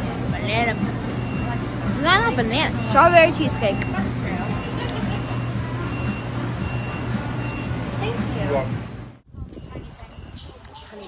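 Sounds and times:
high electronic beep: 3.6s - 7.8s.

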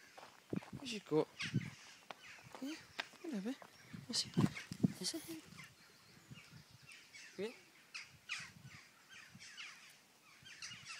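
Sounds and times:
birds calling: 0.0s - 10.9s.

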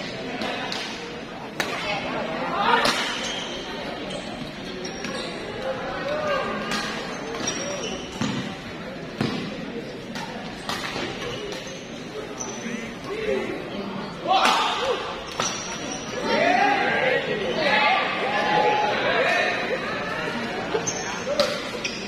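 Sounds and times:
crowd chattering: 0.0s - 22.0s
shoes squeaking on court: 3.2s - 5.7s, 7.0s - 8.6s, 20.7s - 22.0s.

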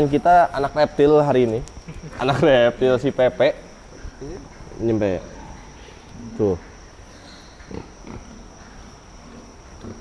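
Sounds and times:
high-pitched insect drone: 0.0s - 10.0s
pigs grunting softly: 5.2s - 10.0s.

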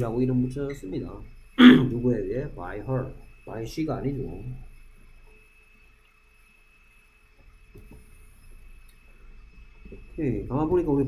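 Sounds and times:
background hum and hiss: 0.0s - 11.0s
high whine: 0.0s - 11.0s.

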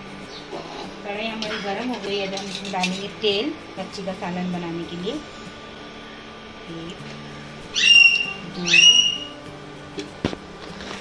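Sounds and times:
induction cooktop low hum: 0.0s - 11.0s.

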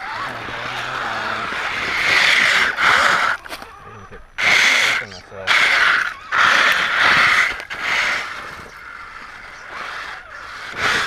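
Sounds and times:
toy car electric motors whining: 0.0s - 11.0s.

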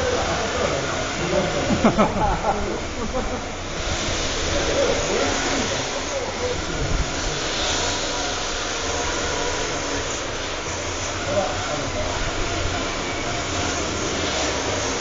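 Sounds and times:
indistinct voices: 0.0s - 15.0s
rc car motors and tyres: 0.0s - 15.0s.

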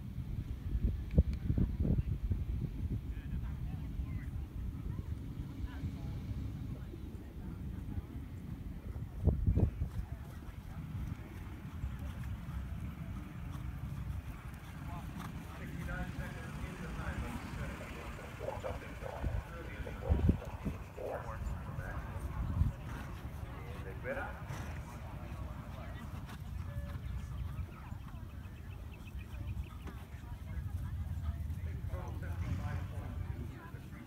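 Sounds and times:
faint distant voices: 0.6s - 34.0s.

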